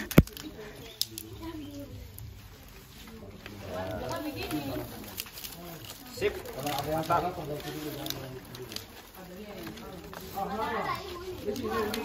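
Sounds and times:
children chattering: 0:00.0 - 0:12.0.

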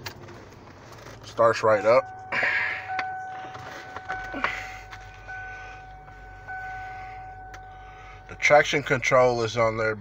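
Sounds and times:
car engine idling: 0:00.0 - 0:10.0
dashboard warning chime: 0:01.4 - 0:10.0.

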